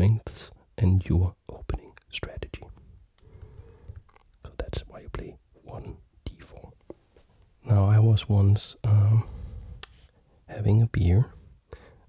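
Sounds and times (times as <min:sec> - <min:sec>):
soft whispered speech: 0:01.2 - 0:02.8, 0:04.4 - 0:06.8.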